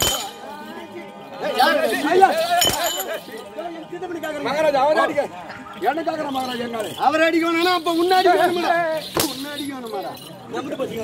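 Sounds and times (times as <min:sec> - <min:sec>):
ankle bells jingling with stamps: 0:00.0 - 0:04.8, 0:05.5 - 0:11.0.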